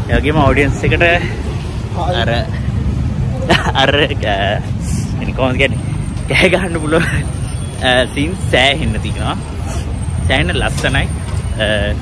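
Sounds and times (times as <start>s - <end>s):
man talking: 0.0s - 2.6s, 3.4s - 12.0s
road traffic rumble: 0.0s - 12.0s.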